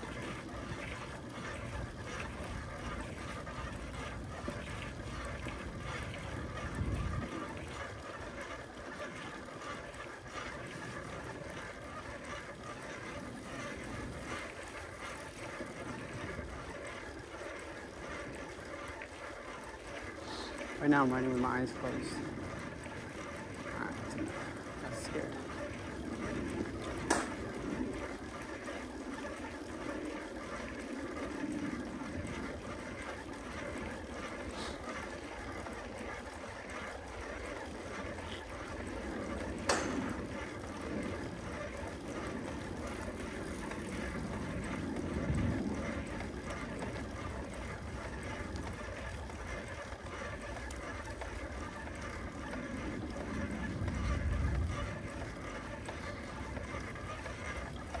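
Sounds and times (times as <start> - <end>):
bicycle clicks: 0.0 - 58.0
bicycle rolling on asphalt: 0.0 - 58.0.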